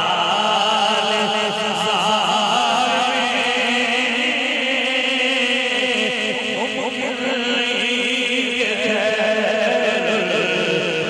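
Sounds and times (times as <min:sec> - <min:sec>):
man chanting through loudspeaker: 0:00.0 - 0:11.0.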